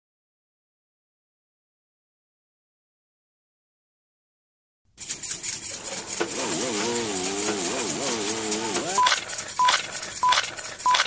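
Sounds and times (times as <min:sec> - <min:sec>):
short high beeps: 0:08.9 - 0:11.0.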